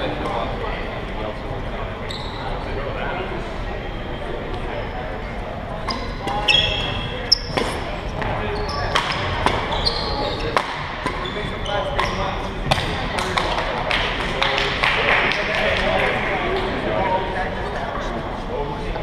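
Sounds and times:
murmur of spectators: 0.0 - 19.0
court shoes squeaking: 2.0 - 2.8, 3.8 - 14.6
racket smacking shuttlecock: 10.5 - 11.2.

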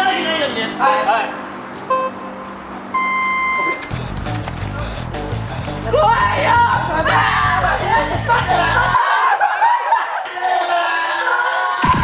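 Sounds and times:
electronic start beeps: 1.9 - 3.9.

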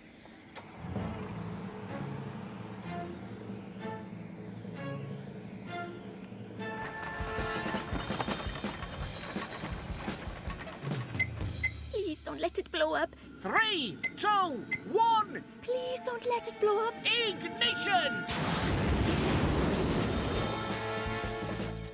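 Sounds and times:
cartoon background music: 13.6 - 21.9.

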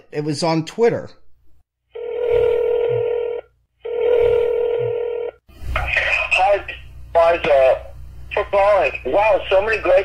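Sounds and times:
telephone ringback tone: 2.0 - 5.4.

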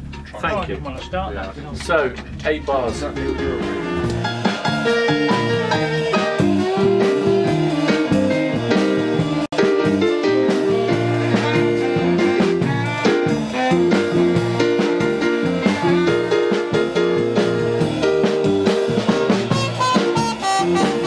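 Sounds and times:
live band playing up-tempo song: 2.7 - 21.0.

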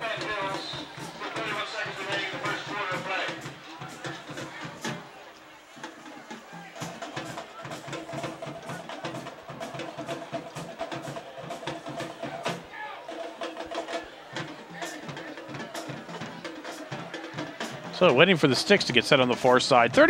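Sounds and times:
drum-led music: 0.0 - 20.0.

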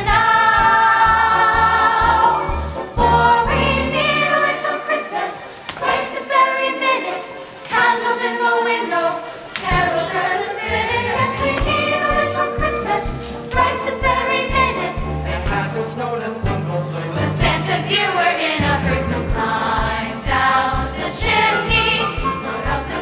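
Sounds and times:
choir accompaniment: 0.0 - 23.0
mixed choir singing: 0.0 - 23.0.

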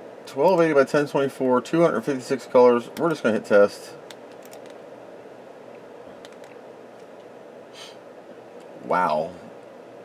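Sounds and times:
computer equipment humming: 0.0 - 10.0.

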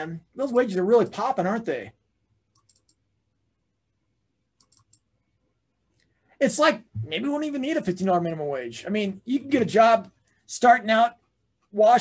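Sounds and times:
computer mouse clicks: 2.5 - 3.1, 4.6 - 5.1.

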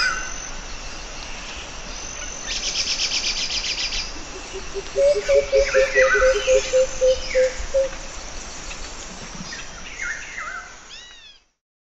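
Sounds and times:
bird calls: 2.1 - 8.0.

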